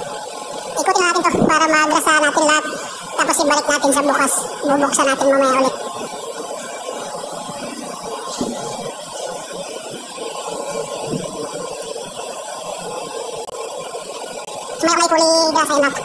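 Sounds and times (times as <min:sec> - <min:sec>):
ship machinery hum and hiss: 0:00.0 - 0:16.0.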